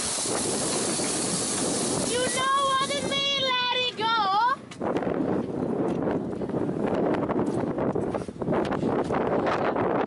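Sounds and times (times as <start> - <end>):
wind rushing: 0.0 - 10.0.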